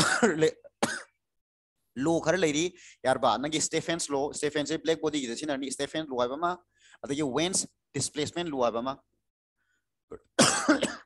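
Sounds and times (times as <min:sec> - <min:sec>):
man coughing: 0:00.0 - 0:01.2, 0:10.1 - 0:11.0.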